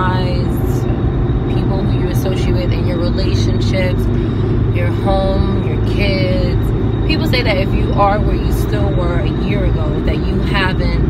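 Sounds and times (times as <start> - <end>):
woman's voice: 0.0 - 0.9, 1.5 - 11.0
car road and engine rumble: 0.0 - 11.0.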